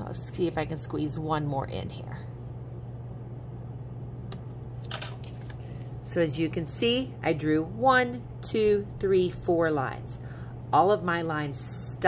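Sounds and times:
steady low hum: 0:00.0 - 0:12.0
paper rustling: 0:05.2 - 0:05.8.

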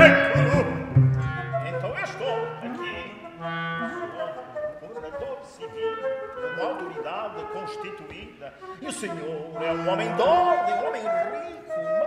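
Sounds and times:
man singing operatically: 0:00.0 - 0:12.0
small instrumental ensemble: 0:00.0 - 0:12.0
wind instrument: 0:00.0 - 0:12.0.

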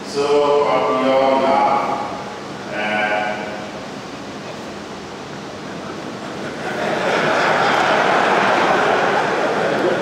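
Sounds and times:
background hall hiss: 0:00.0 - 0:10.0.

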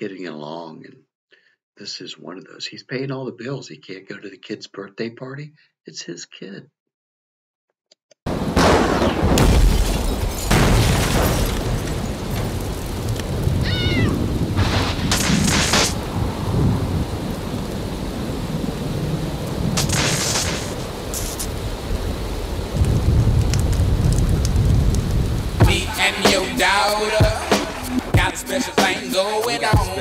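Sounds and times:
low rumbling thunder: 0:08.3 - 0:25.9
thunder cracks: 0:08.3 - 0:28.3
rain: 0:09.4 - 0:28.2.

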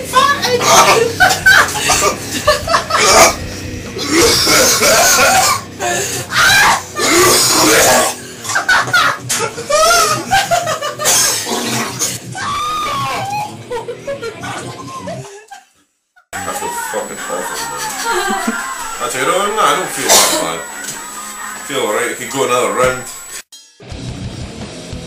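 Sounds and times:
people shouting: 0:00.0 - 0:08.2, 0:09.6 - 0:10.3, 0:12.2 - 0:13.6, 0:16.4 - 0:23.4
people laughing: 0:00.0 - 0:11.5, 0:12.7 - 0:15.7, 0:16.4 - 0:23.2
man retching and vomiting: 0:00.6 - 0:12.3, 0:19.6 - 0:20.9.

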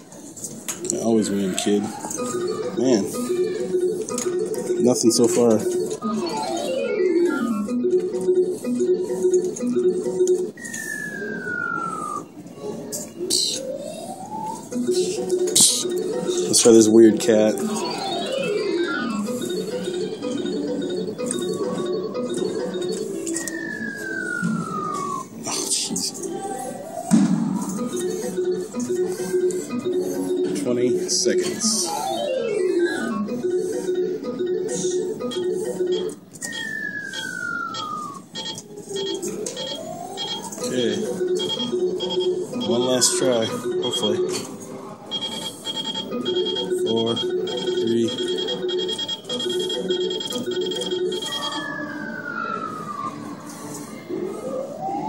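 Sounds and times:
organ-like arcade music: 0:00.0 - 0:55.0
rising sweeps: 0:06.0 - 0:12.4
falling pitch sweep: 0:10.6 - 0:12.3.

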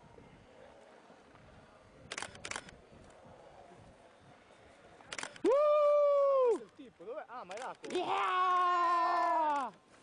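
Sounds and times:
sharp clicks: 0:02.1 - 0:02.8, 0:07.5 - 0:08.1.

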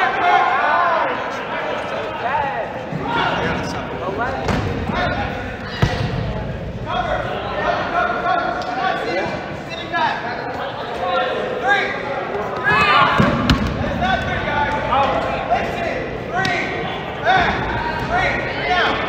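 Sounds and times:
players shouting: 0:00.0 - 0:19.0
dodgeballs bouncing and thudding: 0:04.2 - 0:06.7, 0:12.4 - 0:15.3, 0:16.3 - 0:18.6.

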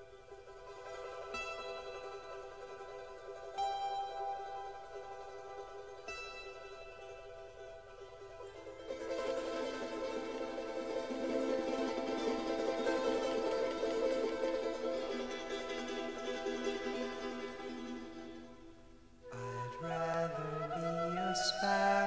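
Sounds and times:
fast-strummed string instrument: 0:00.0 - 0:18.8
andean folk music: 0:00.0 - 0:22.0.

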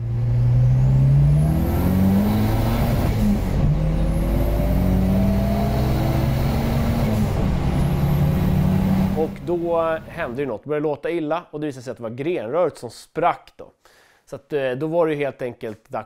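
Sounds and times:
car engine accelerating hard: 0:00.0 - 0:10.4.

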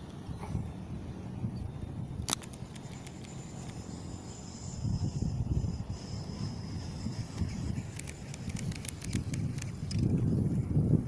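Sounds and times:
wind rumble on microphone: 0:00.0 - 0:11.0
fishing reel click: 0:05.8 - 0:10.1
faint reel ticks: 0:05.9 - 0:10.2.

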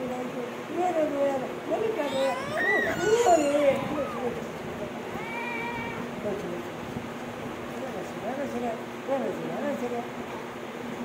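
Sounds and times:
newborn baby crying: 0:02.0 - 0:04.3.

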